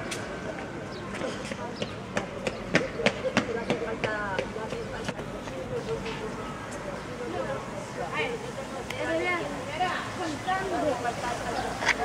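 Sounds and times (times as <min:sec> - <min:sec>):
people talking outdoors: 0:00.0 - 0:12.0.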